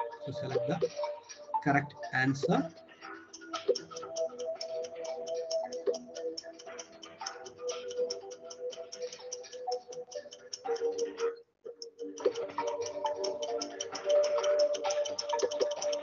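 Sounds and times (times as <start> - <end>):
quiz game music with ticking beat: 0.0 - 16.0.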